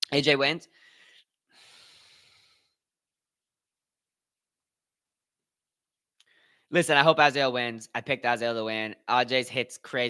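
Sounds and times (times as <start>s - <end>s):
man breathing out: 0.7s - 2.8s.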